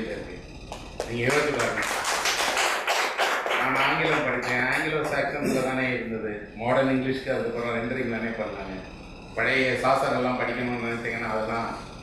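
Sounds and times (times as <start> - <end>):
audience clapping: 0.7 - 5.4.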